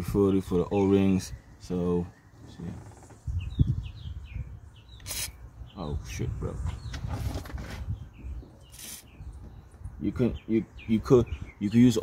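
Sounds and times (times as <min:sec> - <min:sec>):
microphone handling rumble: 0:02.5 - 0:04.6, 0:06.0 - 0:11.6.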